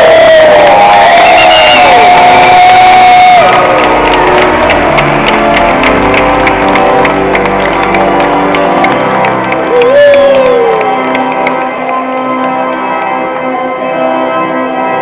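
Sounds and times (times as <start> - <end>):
guests cheering with whoops: 0.0 - 4.0, 9.7 - 10.9
music: 0.0 - 15.0
rhythmic clapping: 1.7 - 12.5.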